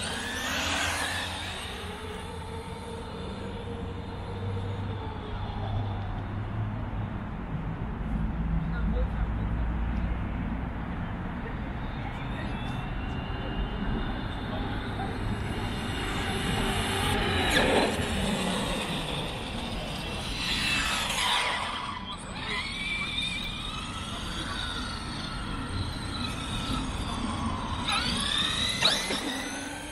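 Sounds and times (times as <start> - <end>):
electric toy car motors whining: 0.0 - 6.2, 12.3 - 29.9.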